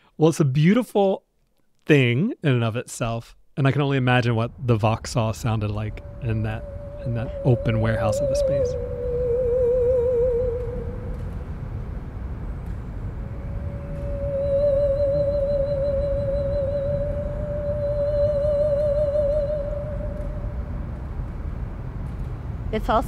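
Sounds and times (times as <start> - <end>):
steady low rumble: 3.6 - 23.0
musical saw with wide vibrato: 5.2 - 11.9, 13.1 - 21.0.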